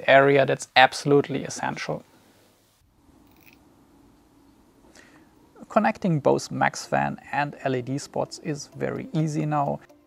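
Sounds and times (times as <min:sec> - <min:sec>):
faint low hum: 0:00.0 - 0:09.9.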